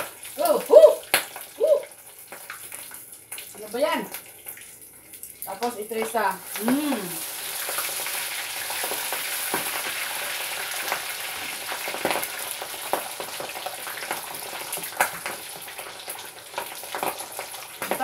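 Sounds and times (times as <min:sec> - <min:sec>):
oil sizzling: 0:00.0 - 0:18.0.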